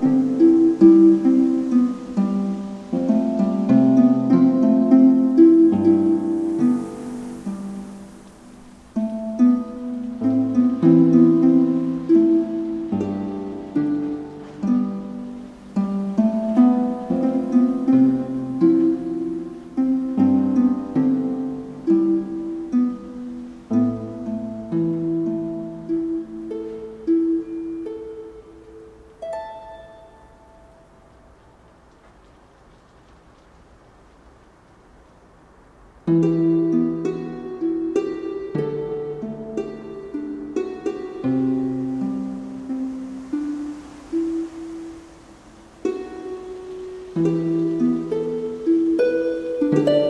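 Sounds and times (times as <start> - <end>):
harp plucked notes and chords: 0.0 - 8.2, 8.9 - 31.2, 36.1 - 45.0, 45.8 - 50.0.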